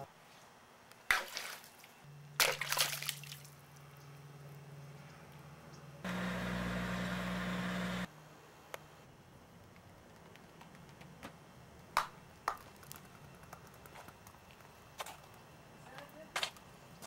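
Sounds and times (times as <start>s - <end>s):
water splashing in a plastic bowl: 2.4s - 3.6s
low hum: 3.6s - 8.1s.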